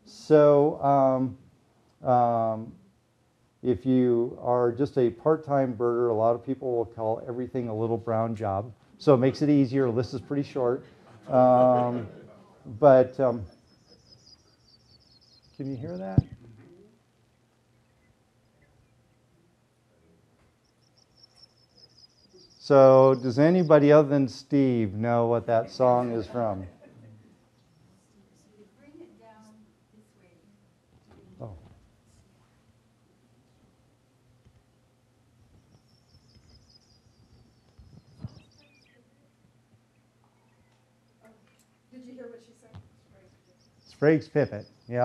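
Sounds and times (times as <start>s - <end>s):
recorded bird song through loudspeakers: 12.9s - 16.7s, 17.6s - 19.4s, 20.4s - 25.8s, 35.5s - 41.2s, 43.0s - 45.0s
low thump: 16.1s - 16.6s.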